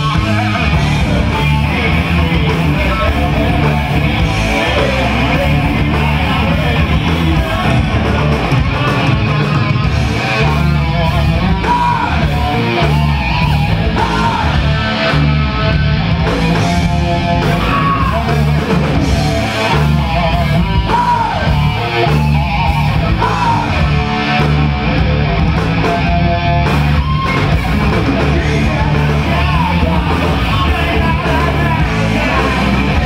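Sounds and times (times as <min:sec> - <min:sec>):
man singing: 0:00.0 - 0:09.3, 0:10.1 - 0:13.1, 0:13.7 - 0:14.8, 0:16.9 - 0:21.8, 0:23.0 - 0:23.9, 0:27.8 - 0:33.0
bass guitar: 0:00.0 - 0:33.0
drums: 0:00.0 - 0:33.0
electric guitar: 0:00.0 - 0:33.0.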